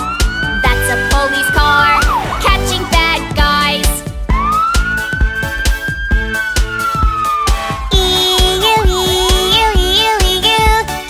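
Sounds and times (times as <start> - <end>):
police siren wail: 0.0 - 10.2
children's song with drum beat: 0.2 - 11.0.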